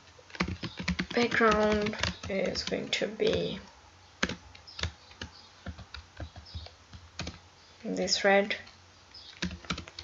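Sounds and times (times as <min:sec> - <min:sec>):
computer keyboard typing: 0:00.0 - 0:07.4, 0:09.3 - 0:10.0.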